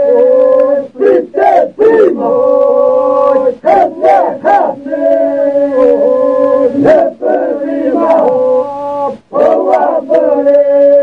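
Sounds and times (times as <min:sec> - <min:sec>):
men singing polyphonic song: 0:00.0 - 0:11.0.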